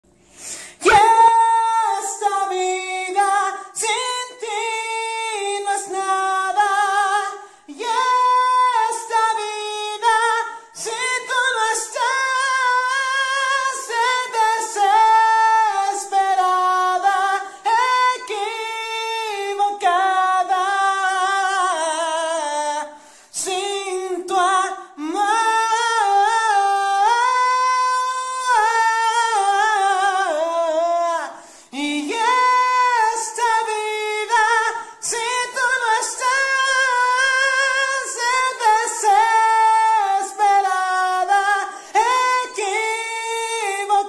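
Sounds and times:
person singing unaccompanied: 0.5s - 44.0s.

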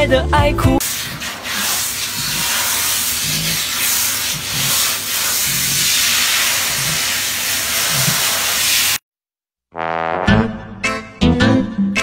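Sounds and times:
grooming tool hissing on fur: 0.8s - 9.0s.

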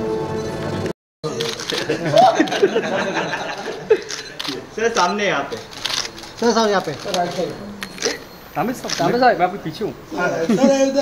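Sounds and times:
camera shutter clicks: 1.4s - 2.6s, 4.1s - 8.2s, 8.8s - 9.2s.

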